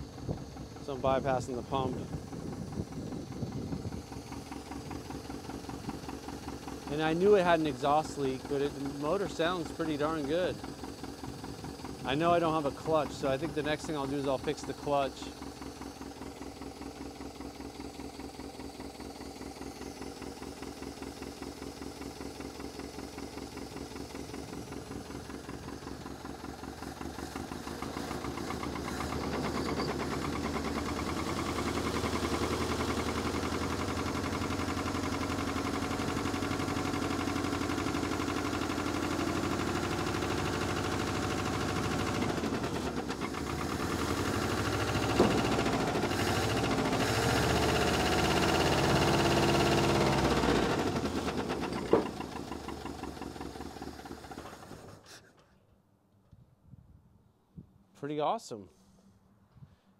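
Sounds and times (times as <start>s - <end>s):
misfiring engine running: 0.0s - 55.1s.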